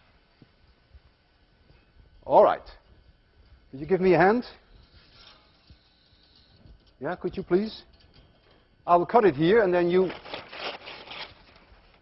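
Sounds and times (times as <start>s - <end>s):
paper rustling and tearing: 9.9s - 12.0s.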